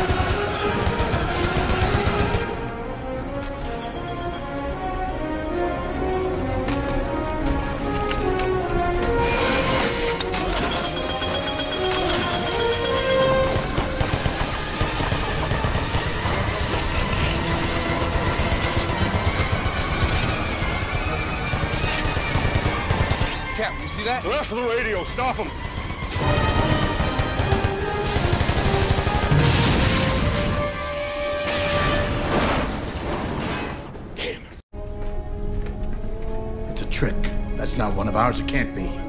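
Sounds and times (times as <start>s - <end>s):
dramatic film-score music: 0.0s - 39.0s.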